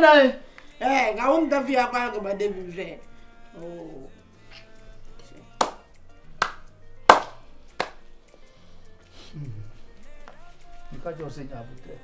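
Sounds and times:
soft background music: 0:00.0 - 0:12.0
sharp hand claps: 0:05.6 - 0:08.1.

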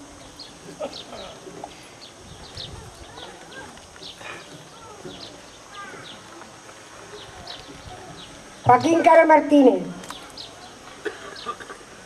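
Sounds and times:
small birds chirping: 0:00.0 - 0:11.7
murmur of people: 0:00.0 - 0:12.0.

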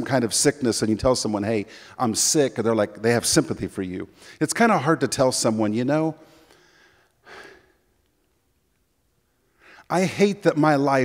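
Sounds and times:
man speaking: 0:00.0 - 0:06.2, 0:09.9 - 0:11.0
man's sharp in-breath: 0:06.2 - 0:07.8.

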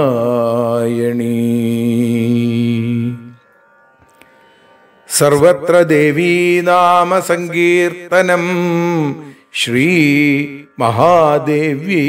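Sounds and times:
man chanting a prayer: 0:00.0 - 0:03.4, 0:05.1 - 0:12.0.

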